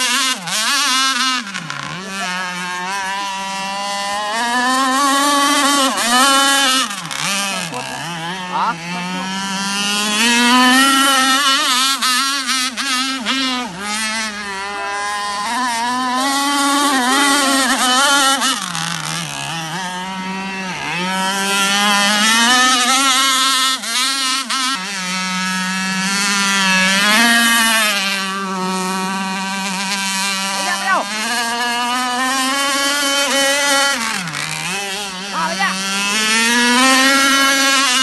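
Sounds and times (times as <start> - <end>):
two-stroke boat engine revving: 0.0 - 38.0.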